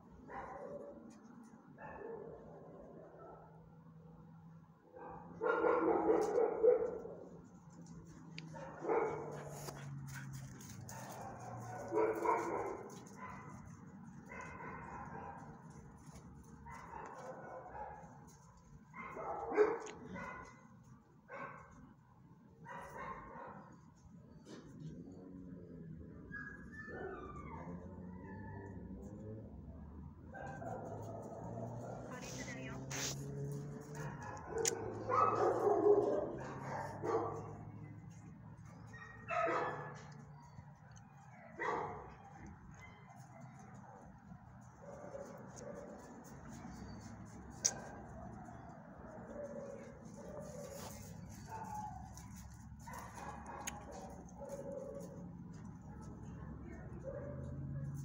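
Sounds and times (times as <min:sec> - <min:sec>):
dog barking: 0:00.3 - 0:01.0, 0:01.8 - 0:02.5, 0:04.9 - 0:07.2, 0:08.5 - 0:10.3, 0:10.9 - 0:13.7, 0:14.3 - 0:15.5, 0:16.7 - 0:18.1, 0:19.0 - 0:20.6, 0:22.7 - 0:23.7, 0:30.3 - 0:33.2, 0:33.9 - 0:37.7, 0:38.9 - 0:40.1, 0:41.5 - 0:43.6, 0:52.8 - 0:55.2, 0:56.9 - 0:58.0.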